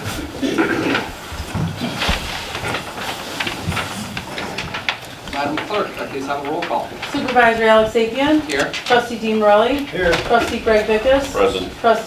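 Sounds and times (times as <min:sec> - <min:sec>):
chairs being moved: 0:00.0 - 0:12.0
rustling: 0:00.0 - 0:12.0
knocks and clatters: 0:00.8 - 0:11.3.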